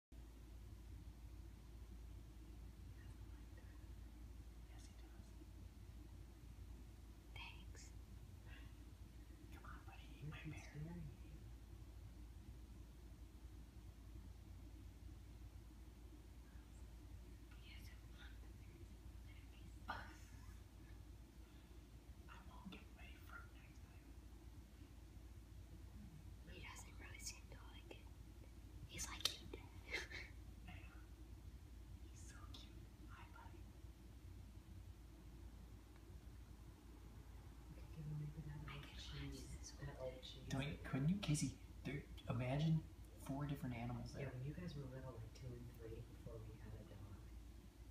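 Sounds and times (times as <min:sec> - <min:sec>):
low steady hum: 0:00.0 - 0:47.9
faint whisper: 0:02.5 - 0:05.8, 0:07.2 - 0:11.6, 0:16.3 - 0:25.1, 0:25.8 - 0:31.3, 0:31.9 - 0:33.8, 0:37.4 - 0:47.9.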